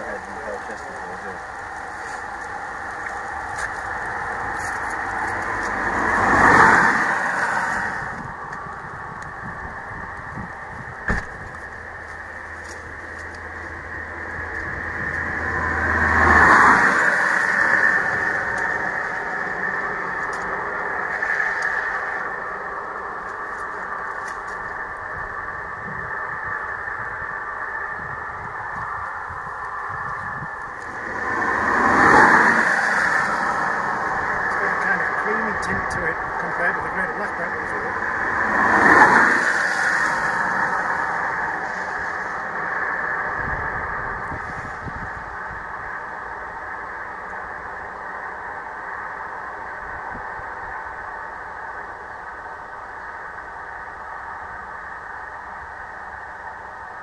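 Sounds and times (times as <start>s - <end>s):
outdoor background noise: 0.0s - 57.0s
vehicles passing: 0.0s - 57.0s.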